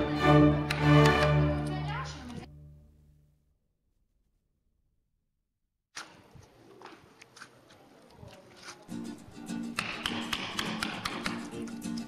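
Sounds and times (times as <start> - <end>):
chisel tapping into wood: 9.8 - 11.5.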